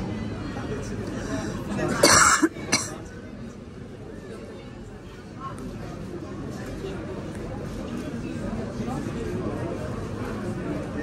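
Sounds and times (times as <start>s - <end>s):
murmur of voices: 0.0s - 11.0s
person coughing: 1.9s - 3.0s.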